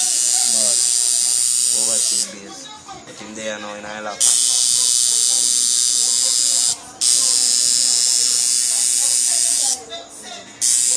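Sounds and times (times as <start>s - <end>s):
tattoo machine buzzing: 0.0s - 2.6s, 4.2s - 9.9s, 10.6s - 10.9s.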